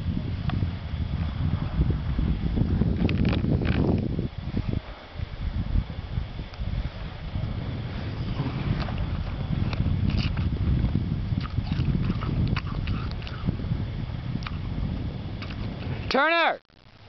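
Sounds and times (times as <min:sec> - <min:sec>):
wind buffeting microphone: 0:00.0 - 0:16.5.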